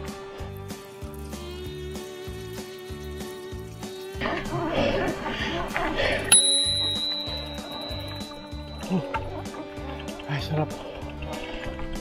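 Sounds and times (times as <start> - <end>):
bicycle bell ding: 6.3 - 9.3.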